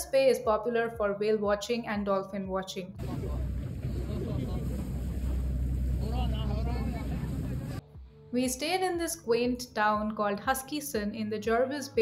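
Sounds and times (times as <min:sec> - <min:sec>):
boat engine rumbling: 0:03.0 - 0:07.8
water noise: 0:03.0 - 0:07.8
wind: 0:03.0 - 0:07.8.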